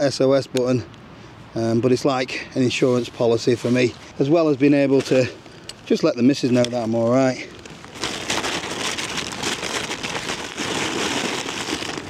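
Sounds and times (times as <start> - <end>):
fabric stuff sack rustling: 2.7 - 12.0.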